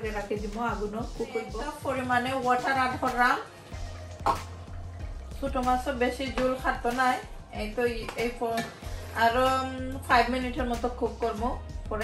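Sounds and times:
woman's voice: 0.0 - 3.5, 5.4 - 12.0
background music: 0.0 - 12.0.

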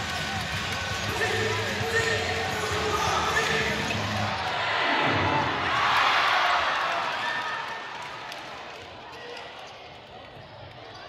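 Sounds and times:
arena crowd chatter: 0.0 - 11.0.

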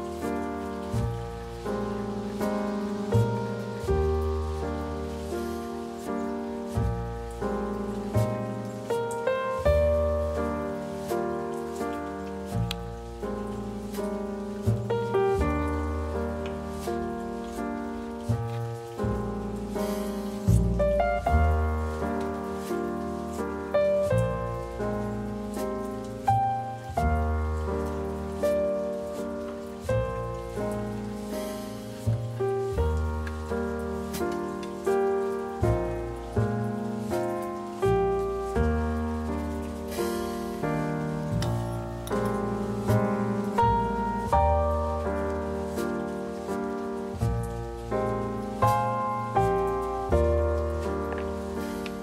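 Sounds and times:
soft piano music: 0.0 - 52.0.

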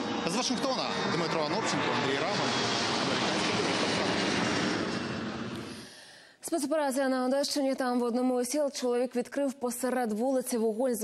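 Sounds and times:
jet aircraft rushing: 0.0 - 6.0.

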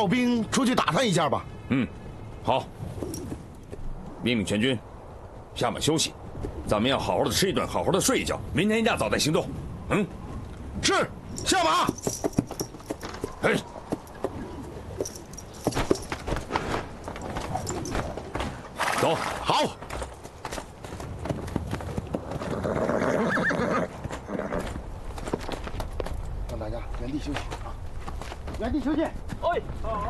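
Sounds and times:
horse hooves clopping: 2.9 - 4.0, 11.3 - 18.8, 19.7 - 30.0
horse neighing: 22.4 - 24.8.

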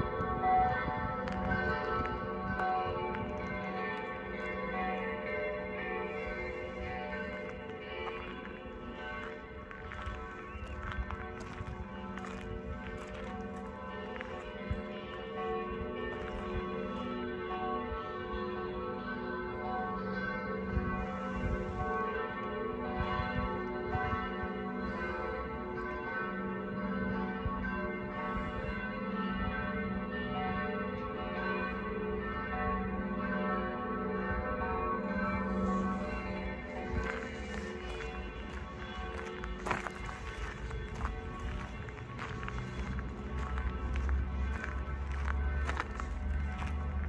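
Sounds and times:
footsteps: 0.0 - 17.2, 35.4 - 47.0
church bells ringing: 0.0 - 47.0.

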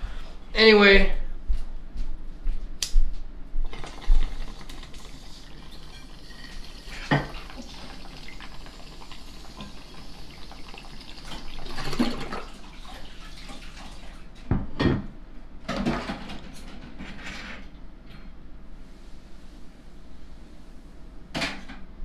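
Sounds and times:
bong water gurgling: 3.6 - 14.4.

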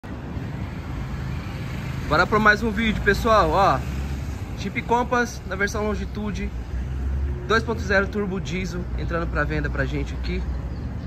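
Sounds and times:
vehicle engine low rumble: 0.0 - 11.0.

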